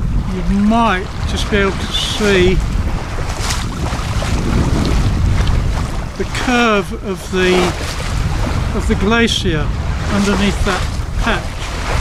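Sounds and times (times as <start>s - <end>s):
choppy sea washing: 0.0s - 12.0s
wind buffeting microphone: 0.0s - 12.0s.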